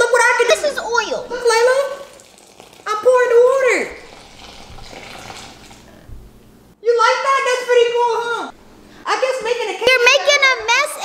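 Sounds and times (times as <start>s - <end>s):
water pouring into plastic bowl: 1.4s - 6.0s.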